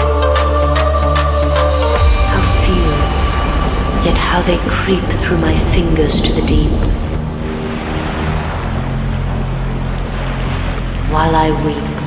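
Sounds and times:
low synth chords: 0:00.0 - 0:12.0
rushing wash of noise: 0:00.0 - 0:12.0.

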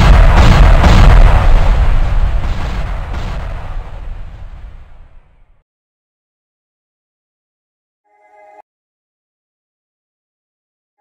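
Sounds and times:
explosion boom with deep rumble: 0:00.0 - 0:05.6.

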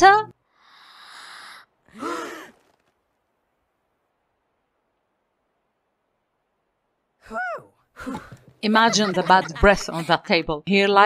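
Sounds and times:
girl sighing: 0:00.6 - 0:02.6.

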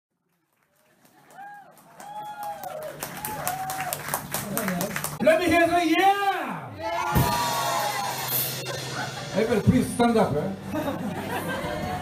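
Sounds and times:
audience whooping and clapping: 0:00.2 - 0:05.2, 0:06.8 - 0:08.6.

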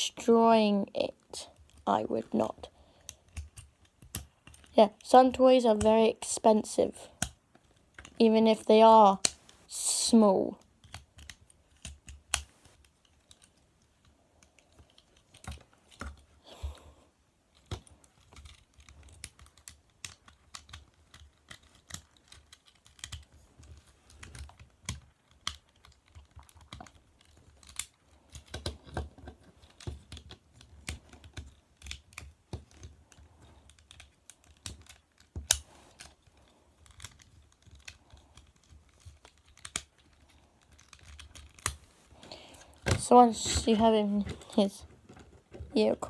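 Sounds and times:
small plastic clicks and taps: 0:02.8 - 0:06.2, 0:07.0 - 0:09.6, 0:10.5 - 0:16.9, 0:17.5 - 0:45.8.

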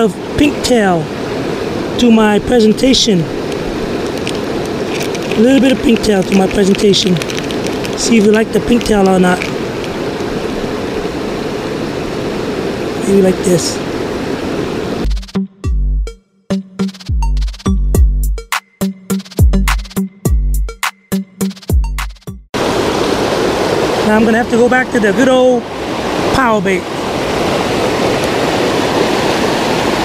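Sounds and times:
river water rushing over rocks: 0:00.0 - 0:15.1, 0:22.6 - 0:30.0
hip-hop beat: 0:15.1 - 0:22.4.

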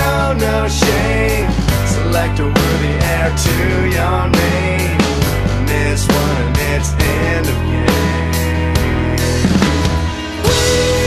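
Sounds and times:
rock band music: 0:00.0 - 0:11.0.

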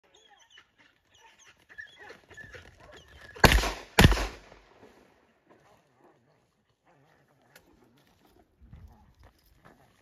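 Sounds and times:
faint animal calls: 0:00.0 - 0:03.4
shotgun shots: 0:03.4 - 0:04.8.

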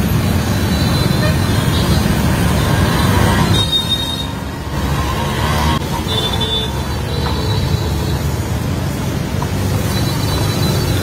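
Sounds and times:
traffic noise: 0:00.0 - 0:11.0.

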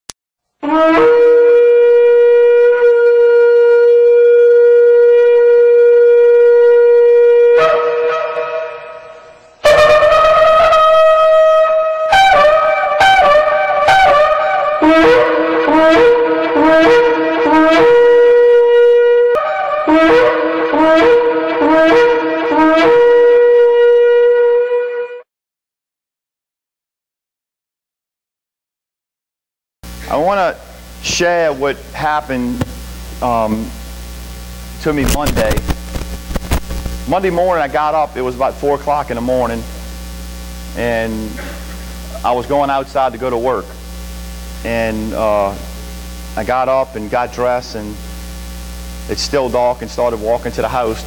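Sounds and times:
shofar blasts: 0:00.6 - 0:25.2.

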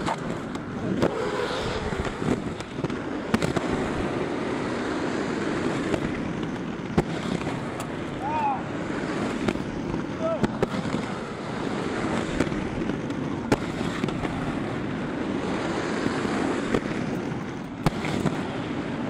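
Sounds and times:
skate wheels rolling on asphalt: 0:00.0 - 0:19.0.

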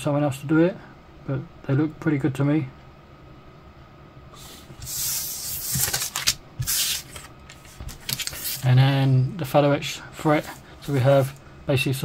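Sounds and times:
paper and plastic rustling: 0:04.8 - 0:08.7.

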